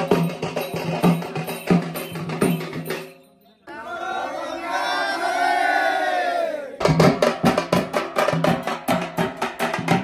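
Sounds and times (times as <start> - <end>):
barrel drums beating: 0.0 - 3.2, 6.8 - 10.0
men shouting together: 3.7 - 6.8.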